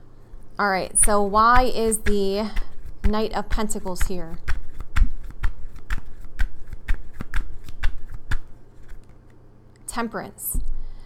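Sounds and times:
cards being shuffled: 1.0s - 9.4s.

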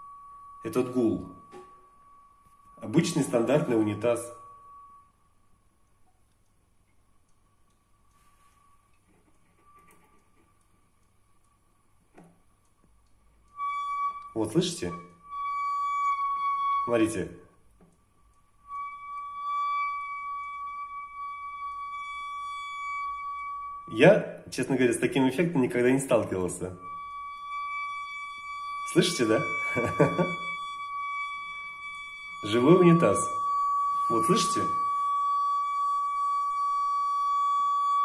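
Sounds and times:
toilet inlet high resonant tone: 0.0s - 5.6s, 18.5s - 38.0s.

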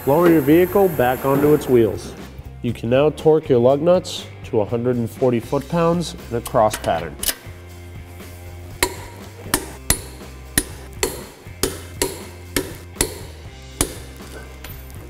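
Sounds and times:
soft background music: 0.0s - 15.0s
torque wrench clicking: 8.8s - 14.2s.

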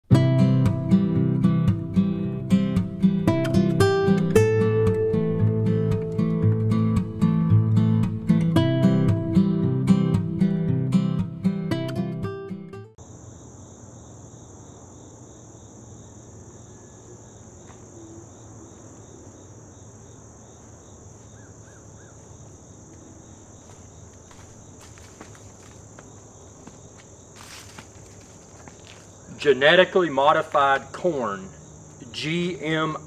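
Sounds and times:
acoustic guitar music: 0.1s - 13.0s
crickets and insects chorus: 13.0s - 33.0s
lower pulsing insect call: 13.0s - 33.0s.

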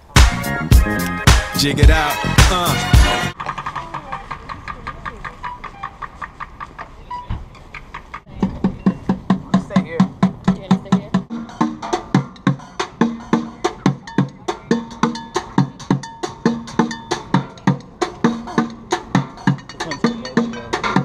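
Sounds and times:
drumming on plastic buckets: 1.3s - 21.0s.

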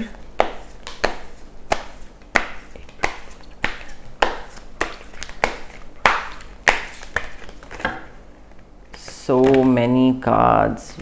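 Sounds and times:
cards being shuffled: 0.4s - 9.8s.

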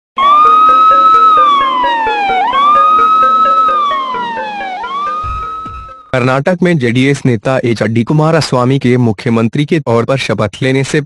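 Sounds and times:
siren-like swooping tone: 0.2s - 6.2s.

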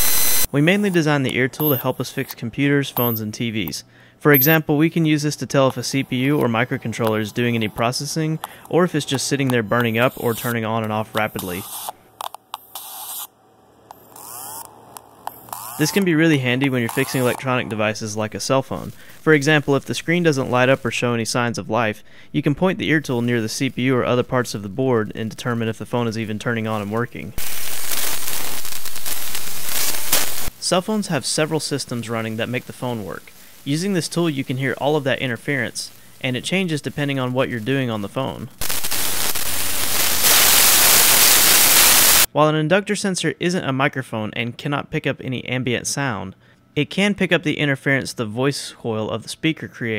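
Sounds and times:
bursts of high static: 0.0s - 1.0s, 5.5s - 22.0s, 22.6s - 42.3s.

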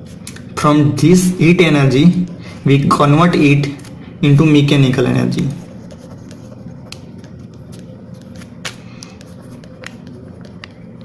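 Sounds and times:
low steady hum: 0.0s - 11.0s
pen scratching on paper: 5.3s - 8.4s.

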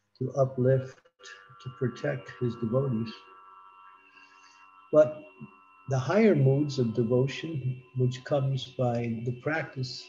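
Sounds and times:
faint high-pitched ringing: 0.0s - 10.0s
man talking: 0.2s - 3.2s, 5.0s - 5.3s, 5.9s - 10.0s.

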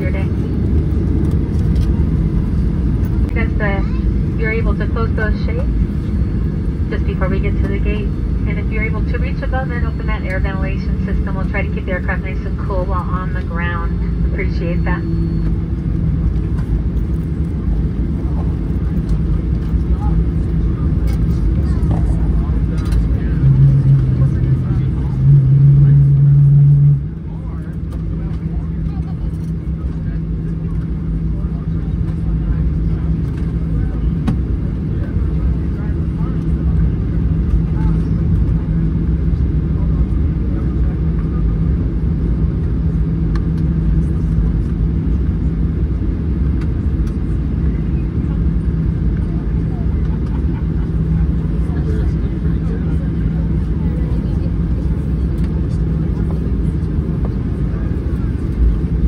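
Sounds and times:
jet engines rumbling: 0.0s - 59.0s
loud low hum: 0.0s - 59.0s.

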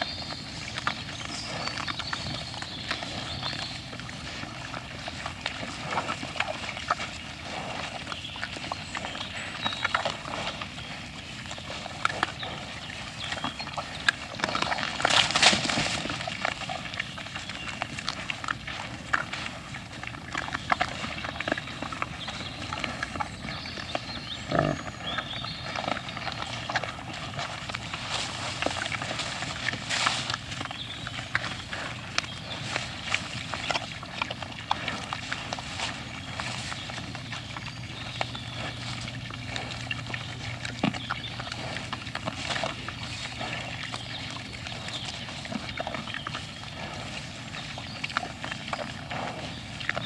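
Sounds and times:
wild boars rooting and chewing: 0.0s - 50.0s
noisy scuffle: 27.3s - 30.7s.

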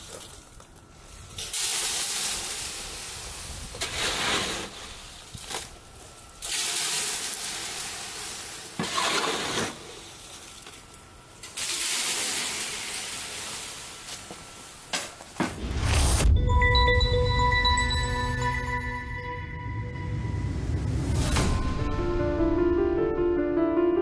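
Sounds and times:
concrete spraying from hose: 1.3s - 5.7s, 6.4s - 10.8s, 11.4s - 14.7s
music with deep bass: 16.2s - 24.0s.

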